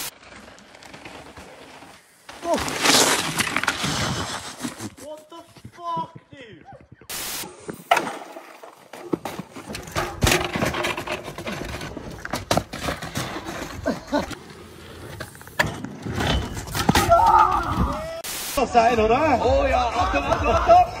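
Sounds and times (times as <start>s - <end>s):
bike on dirt track: 0.0s - 5.8s, 7.0s - 18.2s
knocks and scrapes: 0.1s - 14.4s, 15.0s - 17.9s
people shouting: 17.0s - 18.3s.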